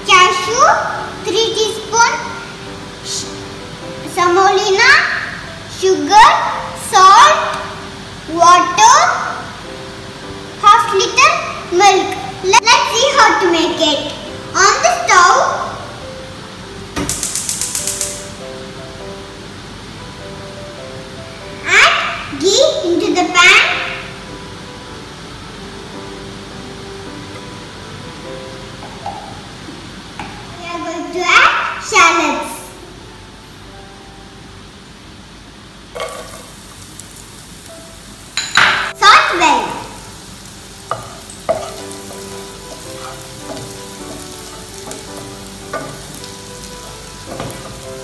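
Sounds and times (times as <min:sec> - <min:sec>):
fat sizzling in a saucepan: 0:00.0 - 0:27.3, 0:34.9 - 0:48.0
background music sustained notes: 0:00.0 - 0:48.0
gas hob igniter clicking: 0:17.0 - 0:18.3.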